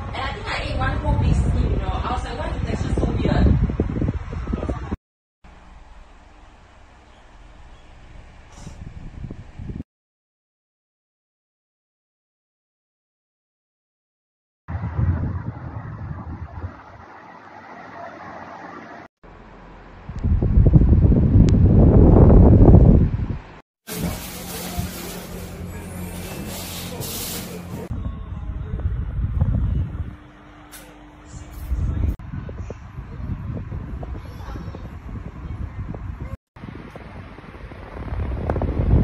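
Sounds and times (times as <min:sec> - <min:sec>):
pedestal fan motor hum: 0:05.5 - 0:09.8, 0:14.7 - 0:39.0
loud low rumble: 0:14.7 - 0:17.0, 0:19.3 - 0:39.0.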